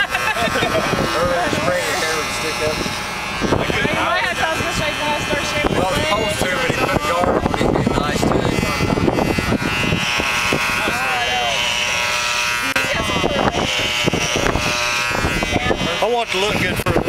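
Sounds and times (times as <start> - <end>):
laughter: 0.0 - 1.0
hair clippers buzzing: 0.0 - 17.0
voices: 0.0 - 17.0.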